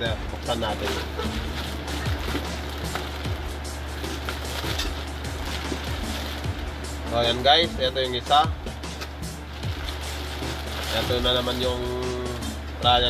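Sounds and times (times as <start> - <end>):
background music: 0.0 - 13.0
plastic mailer crinkling: 0.4 - 6.6, 9.5 - 12.4.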